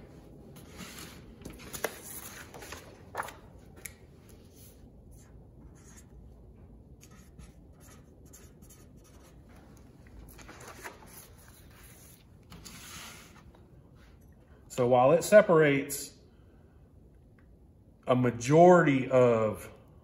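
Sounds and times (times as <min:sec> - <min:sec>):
marker scratching on paper: 0:05.1 - 0:06.1, 0:07.0 - 0:09.4.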